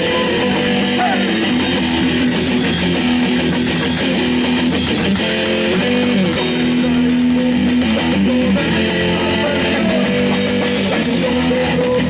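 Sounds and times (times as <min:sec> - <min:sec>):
bass guitar: 0:00.0 - 0:12.0
drums: 0:00.0 - 0:12.0
electric guitars strumming: 0:00.0 - 0:12.0.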